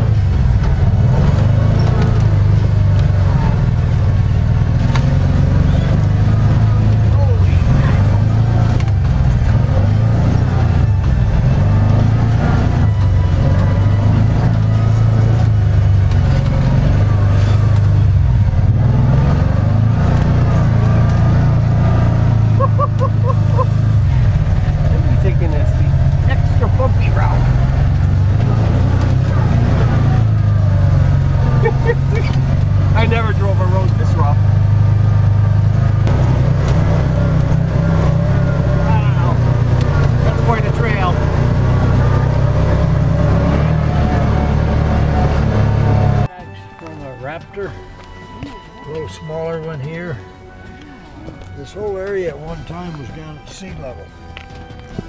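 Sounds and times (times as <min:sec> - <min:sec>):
vehicle engine drone: 0:00.0 - 0:55.0.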